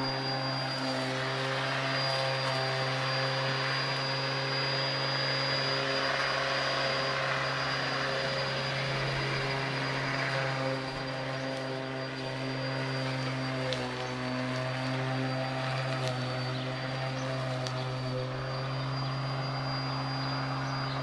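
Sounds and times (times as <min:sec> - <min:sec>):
electric lawn mower running: 0:00.0 - 0:21.0.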